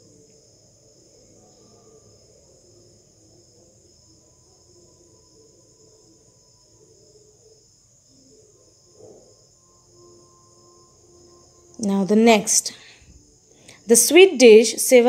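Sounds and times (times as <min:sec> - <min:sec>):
crickets trilling: 0:00.0 - 0:15.0.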